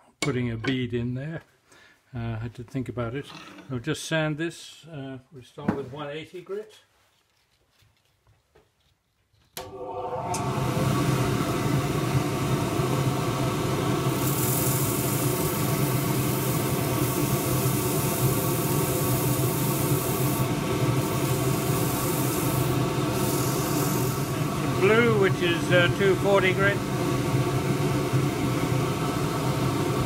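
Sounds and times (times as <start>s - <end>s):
lathe motor hum: 9.6s - 30.0s
sanding hiss: 14.1s - 25.0s.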